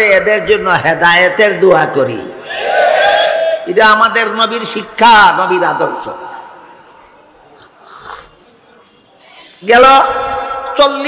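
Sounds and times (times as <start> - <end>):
man sipping from a glass: 7.6 - 8.4.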